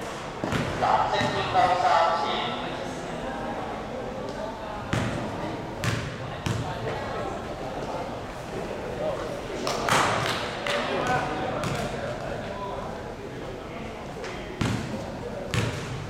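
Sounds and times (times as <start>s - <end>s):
voices echoing in hall: 0.0s - 16.0s
basketball bouncing on hall floor: 0.4s - 1.5s, 4.9s - 6.8s, 11.0s - 12.0s, 14.6s - 16.0s.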